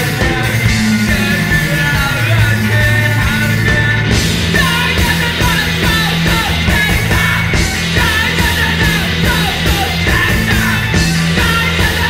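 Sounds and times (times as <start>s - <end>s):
bass guitar: 0.0s - 12.0s
drum kit hits: 0.0s - 12.0s
electric guitars: 0.0s - 12.0s.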